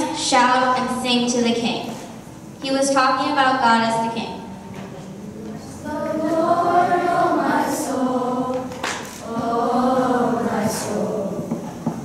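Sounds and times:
children singing together: 5.5s - 11.9s.

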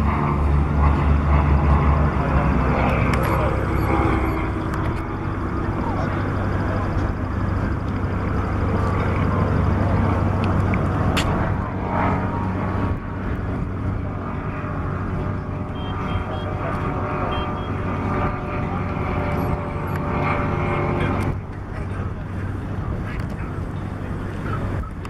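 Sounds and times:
light aircraft engine droning: 0.0s - 25.0s.

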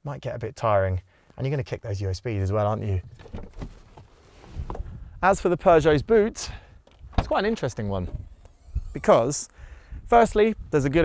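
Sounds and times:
quiet outdoor background noise: 0.0s - 11.0s.

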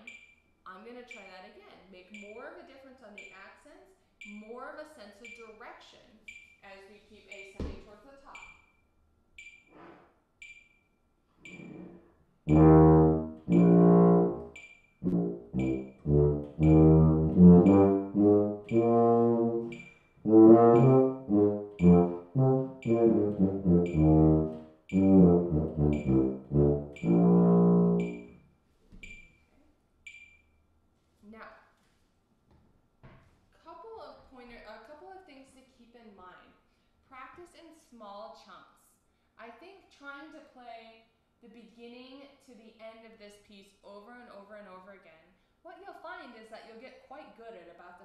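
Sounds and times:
metronome ticking: 2.2s - 2.5s, 3.2s - 3.4s, 4.2s - 4.5s, 5.2s - 5.6s, 6.3s - 6.6s, 8.4s - 8.6s, 9.4s - 9.7s, 10.4s - 10.8s, 12.5s - 28.4s, 30.1s - 30.4s
tuba playing slowly: 11.7s - 28.4s.

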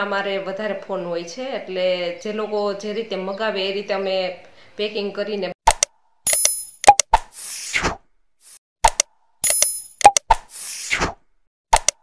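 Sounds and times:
mouse-style clicks: 5.7s - 7.1s, 8.8s - 10.4s, 11.7s - 12.0s.

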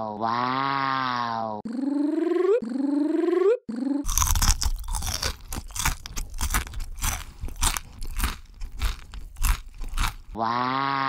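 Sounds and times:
crunchy bites and chewing: 4.1s - 10.4s.

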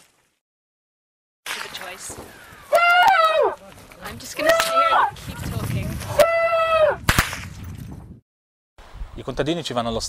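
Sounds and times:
gunshot cracks: 7.1s - 7.6s.

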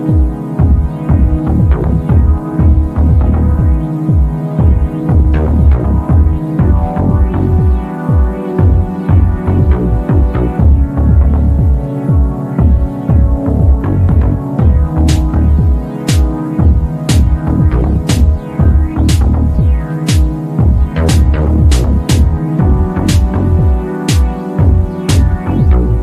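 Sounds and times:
electronic music with throbbing bass: 0.0s - 26.0s.

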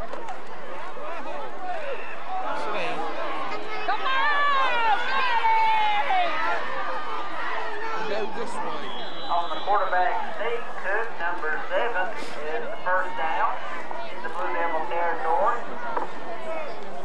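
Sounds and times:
spectators yelling and cheering: 0.0s - 17.0s
drawn-out shouts: 0.8s - 16.9s
high whistle blast: 8.7s - 10.0s.

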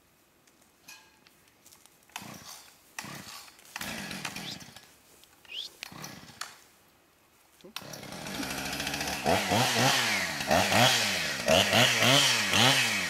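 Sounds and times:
chainsaw starter cord pulls: 2.1s - 4.9s, 5.8s - 6.6s, 7.8s - 13.0s.

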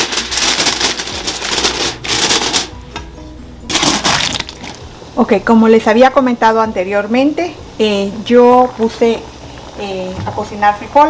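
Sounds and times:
aluminium foil crinkling: 0.0s - 2.7s, 3.7s - 4.8s.

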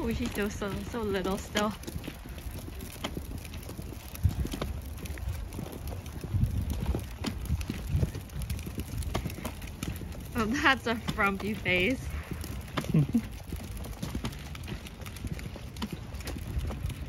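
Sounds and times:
footsteps: 0.0s - 17.0s
stroller wheels rolling on concrete: 0.0s - 17.0s.

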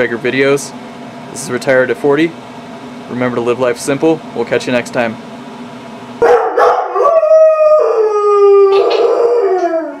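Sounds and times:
dog howling and yipping: 6.2s - 10.0s.

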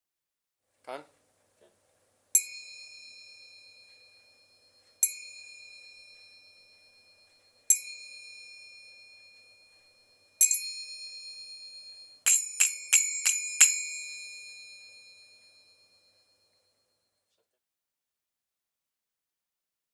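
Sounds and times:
finger cymbals ringing: 2.4s - 17.1s.

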